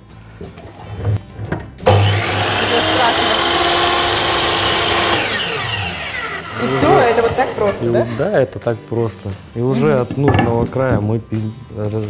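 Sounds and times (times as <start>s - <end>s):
miter saw cutting wood: 1.8s - 8.2s.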